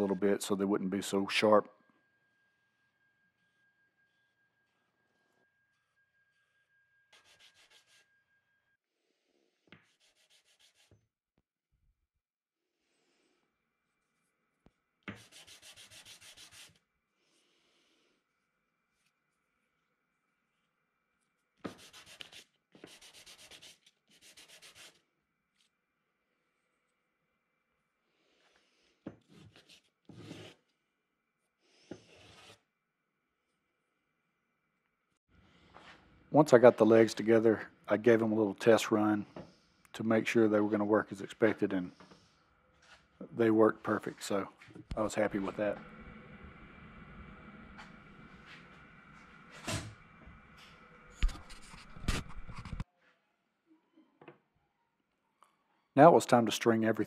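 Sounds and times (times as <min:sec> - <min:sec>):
hand sanding wood: 0:15.1 - 0:16.8, 0:21.7 - 0:25.0
wooden block scraping on sandpaper: 0:29.3 - 0:30.6, 0:31.8 - 0:32.6
faint steady high whine: 0:40.0 - 0:52.1.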